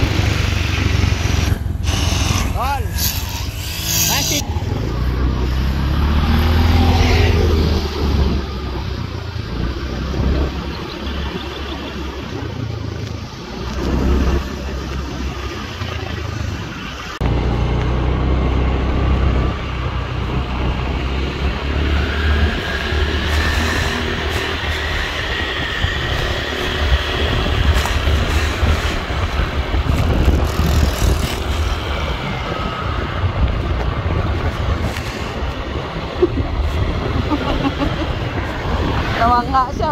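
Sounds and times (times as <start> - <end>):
scooter engine and road noise: 0.0 - 39.9
wind rumbling on microphone: 0.0 - 39.9.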